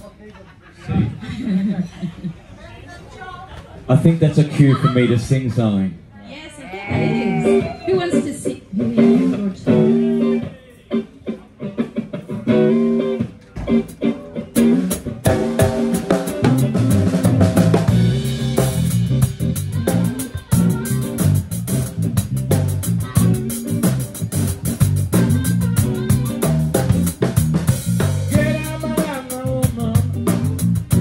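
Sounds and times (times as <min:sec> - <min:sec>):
bass line: 0:06.9 - 0:07.9, 0:08.8 - 0:10.4, 0:14.0 - 0:31.0
electric guitar chords: 0:06.9 - 0:31.0
drum kit with cymbals: 0:12.1 - 0:31.0.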